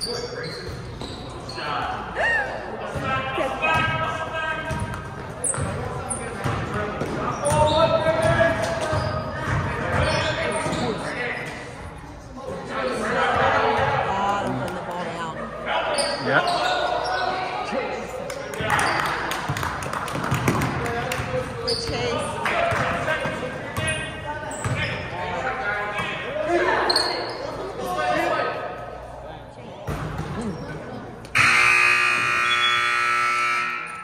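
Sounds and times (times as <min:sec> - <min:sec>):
basketball bouncing on gym floor: 0:04.6 - 0:10.8, 0:19.5 - 0:24.0
scoreboard buzzer long tone: 0:31.4 - 0:34.0.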